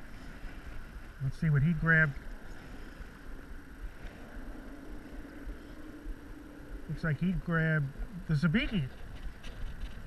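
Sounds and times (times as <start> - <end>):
faint engine-like drone: 0.0 - 10.0
wind rumbling on microphone: 0.0 - 10.0.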